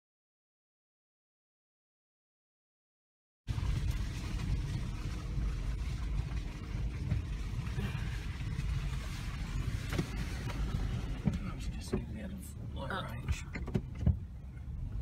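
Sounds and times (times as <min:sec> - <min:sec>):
low rumble of engine and tyres: 0:03.5 - 0:15.0
knocks and rattles from bumps: 0:13.2 - 0:14.3.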